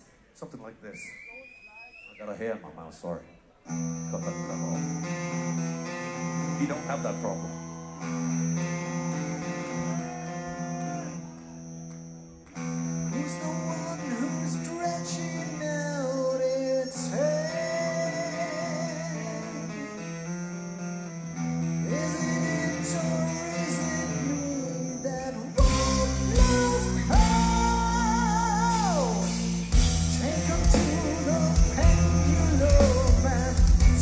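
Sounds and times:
electric guitar playing: 3.7s - 34.0s
person singing: 13.1s - 20.0s, 21.8s - 29.4s, 30.1s - 34.0s
drums and bass: 25.6s - 34.0s.

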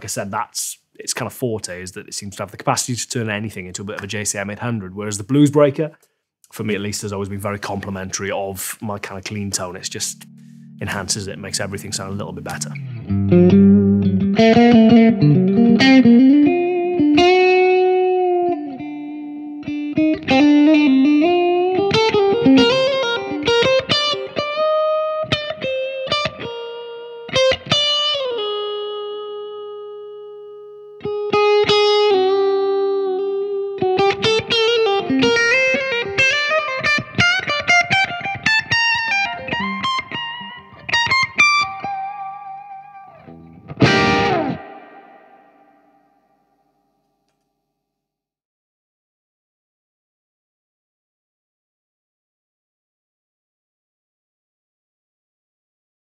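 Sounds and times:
strummed guitar chord: 8.2s - 16.0s, 43.8s - 46.0s
overdriven electric guitar melody: 9.0s - 46.1s.

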